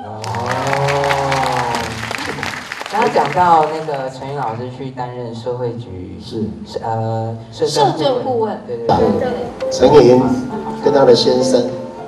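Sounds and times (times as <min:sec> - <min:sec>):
audience applause: 0:00.0 - 0:04.6
held musical chord: 0:09.0 - 0:12.0.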